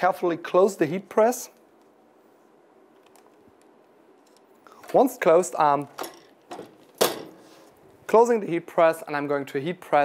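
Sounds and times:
heat press metallic clack: 0:05.9 - 0:07.4.

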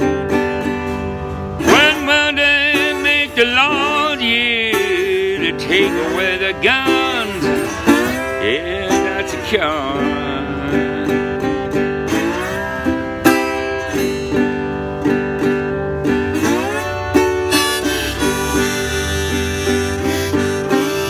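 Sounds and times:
harmonica melody: 0:00.0 - 0:21.0
slide guitar: 0:00.0 - 0:21.0.

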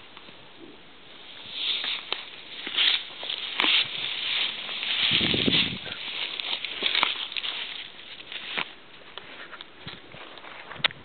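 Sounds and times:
dry straw rustling: 0:01.1 - 0:10.8.

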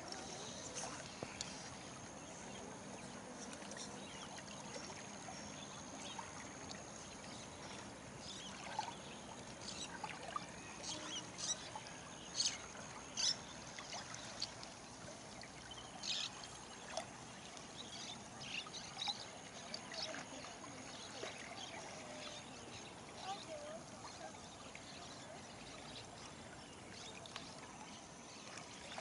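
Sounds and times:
river water running: 0:00.0 - 0:29.0.

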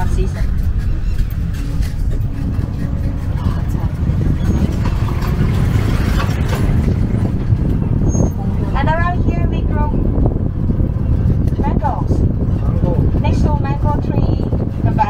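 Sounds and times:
vehicle and tyres rumbling: 0:00.0 - 0:15.0.

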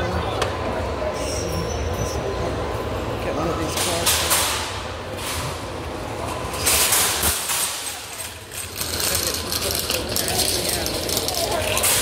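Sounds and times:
shopping cart basket rattling: 0:06.3 - 0:12.0.

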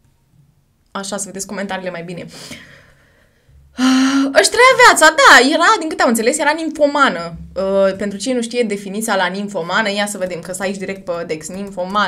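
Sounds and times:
woman talking: 0:01.0 - 0:02.4, 0:04.2 - 0:12.0.

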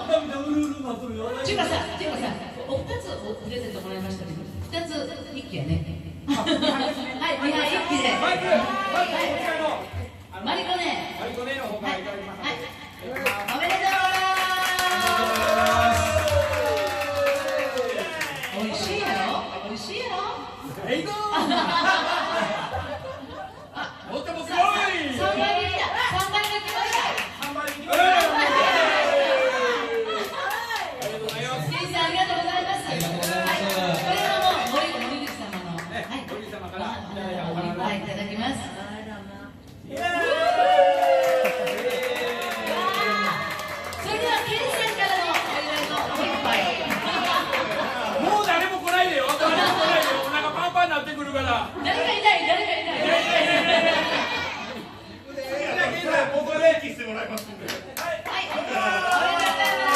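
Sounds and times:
hands clapping rhythmically: 0:13.1 - 0:18.8, 0:26.2 - 0:28.4, 0:57.3 - 0:59.9.

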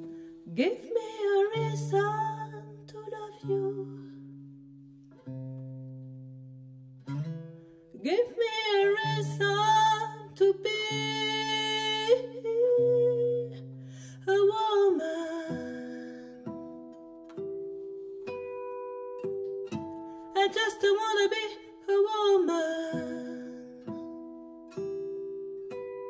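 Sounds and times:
woman singing: 0:00.0 - 0:04.4, 0:07.9 - 0:16.9, 0:20.2 - 0:24.2
acoustic guitar chords: 0:00.0 - 0:26.0.

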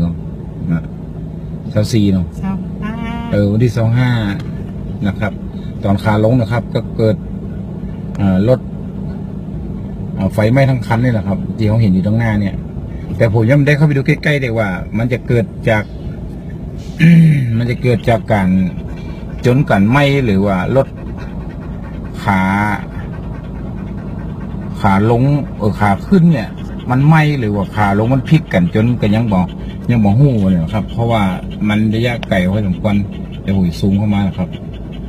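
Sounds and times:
car engine and road drone: 0:00.0 - 0:35.0
constant low hum: 0:00.0 - 0:35.0.

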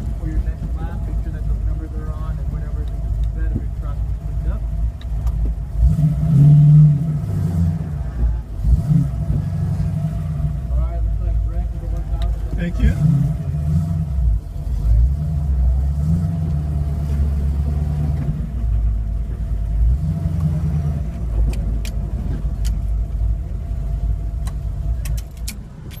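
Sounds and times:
car engine running: 0:00.0 - 0:26.0.

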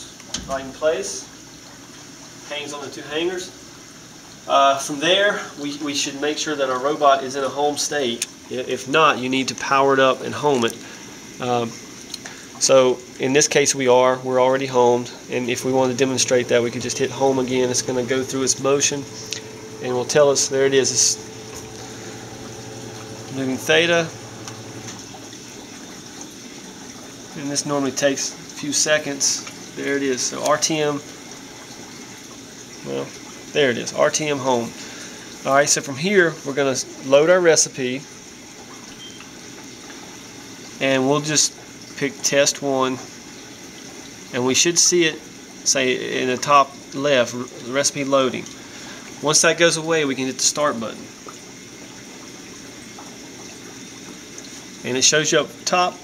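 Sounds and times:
water running in tanks: 0:00.0 - 0:56.0
steady machine hiss: 0:14.0 - 0:25.2
steady rushing water-like noise: 0:15.2 - 0:25.3
robot homing: 0:15.5 - 0:25.1.

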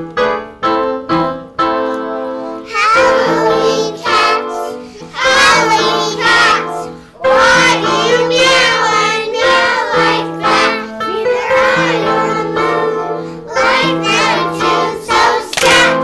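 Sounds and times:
keyboard chords: 0:00.0 - 0:16.0
children and woman singing: 0:02.7 - 0:16.0.

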